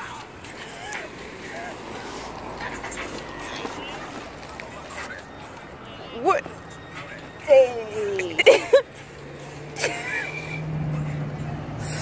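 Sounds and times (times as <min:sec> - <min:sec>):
vehicle engine running: 0:08.6 - 0:12.0.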